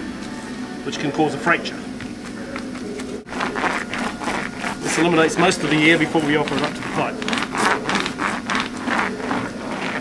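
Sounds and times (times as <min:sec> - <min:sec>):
hand roller rubbing on fibreglass: 0:03.2 - 0:10.0.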